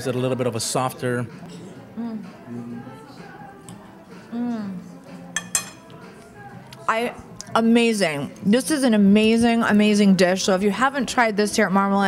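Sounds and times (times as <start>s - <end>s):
person humming mmm: 1.9s - 2.9s, 4.2s - 5.1s
fork clinking on ceramic plate: 5.4s - 6.0s.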